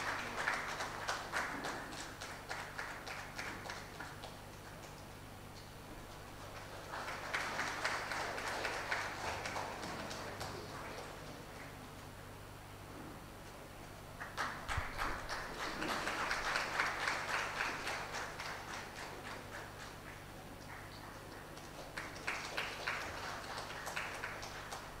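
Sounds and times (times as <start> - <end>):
people clapping: 0.0 - 12.0, 14.1 - 25.0.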